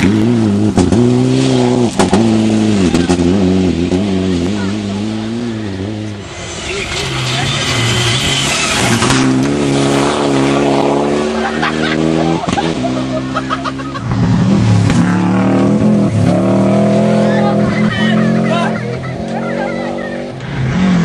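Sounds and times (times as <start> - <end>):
rally car engine accelerating: 0.0 - 21.0
rushing noise: 1.1 - 21.0.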